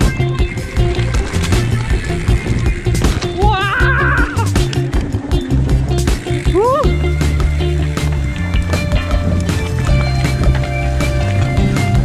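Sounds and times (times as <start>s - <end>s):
music with bass beat: 0.0s - 12.0s.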